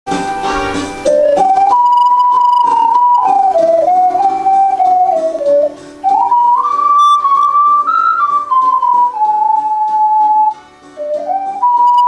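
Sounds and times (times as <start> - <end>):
ocarinas playing a hymn melody: 0.4 - 12.0.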